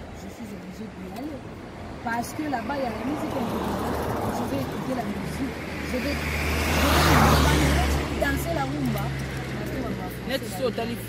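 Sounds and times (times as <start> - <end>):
vehicle passing by: 1.8 - 11.0.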